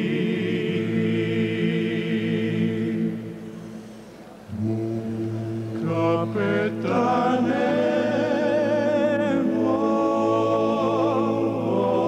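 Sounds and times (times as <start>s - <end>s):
male choir singing a cappella: 0.0s - 3.7s, 4.5s - 12.0s.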